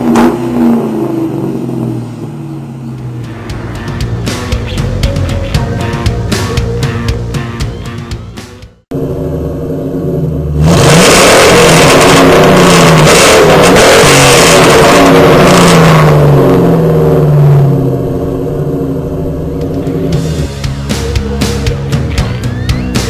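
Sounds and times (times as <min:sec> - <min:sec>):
car engine idling and revving: 0:00.0 - 0:23.0.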